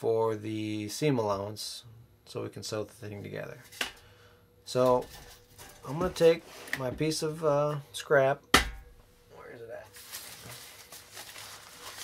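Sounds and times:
thin fabric rustling: 9.9s - 12.0s.

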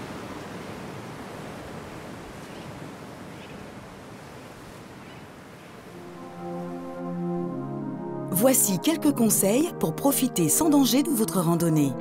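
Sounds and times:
wind: 0.0s - 7.1s.

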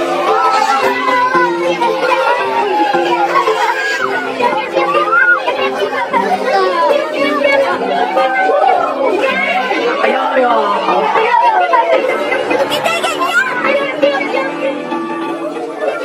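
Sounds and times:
voices laughing and chattering: 0.0s - 16.0s.

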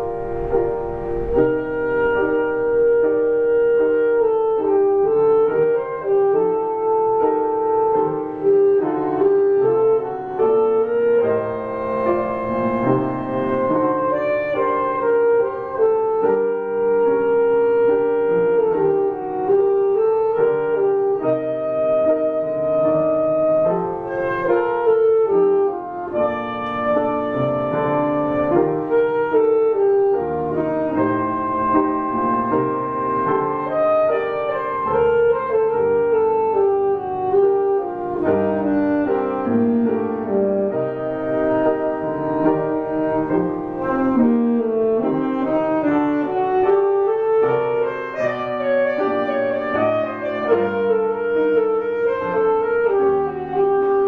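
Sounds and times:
alto saxophone melody: 0.0s - 54.0s
piano accompaniment: 0.0s - 54.0s.

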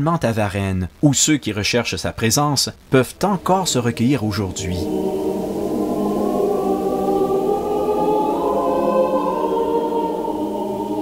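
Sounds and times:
choir singing sustained notes: 3.0s - 11.0s.

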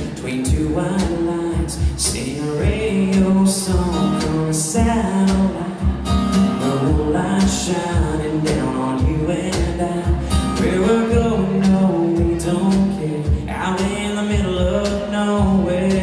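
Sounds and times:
acoustic guitar: 0.0s - 16.0s
cajon beat: 0.0s - 16.0s.

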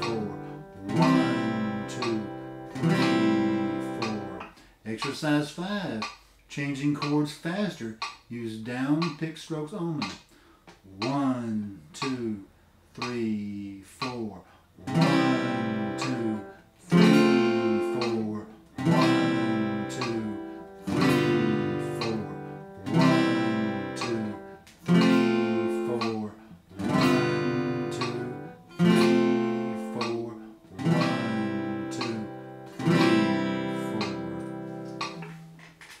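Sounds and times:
acoustic guitar strums: 0.0s - 9.3s, 10.0s - 12.4s, 14.0s - 36.0s.

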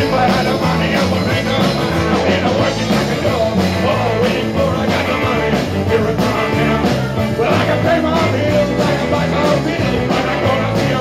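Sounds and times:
blues-rock band playing: 0.0s - 11.0s
man singing: 0.0s - 11.0s.

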